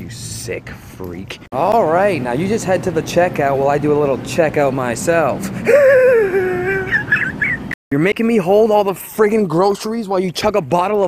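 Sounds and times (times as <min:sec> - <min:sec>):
person laughing high wavering: 0:05.5 - 0:07.6.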